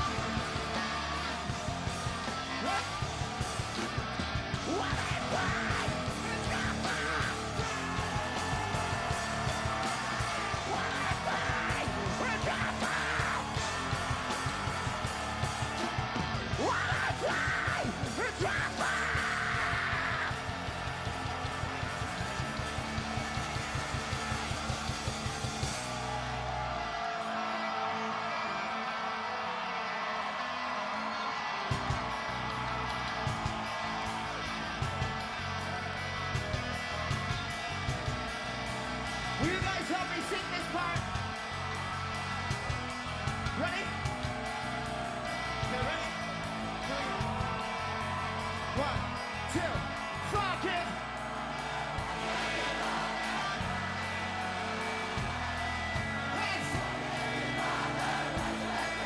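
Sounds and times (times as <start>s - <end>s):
yelled vocals: 0.0s - 24.6s, 43.1s - 59.0s
distorted electric guitars: 0.0s - 26.3s, 31.6s - 59.0s
drums: 0.0s - 29.2s, 30.0s - 59.0s.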